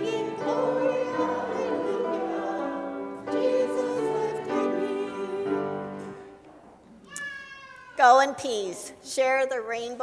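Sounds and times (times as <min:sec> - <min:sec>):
high-pitched cry-like tone: 0:07.0 - 0:08.1.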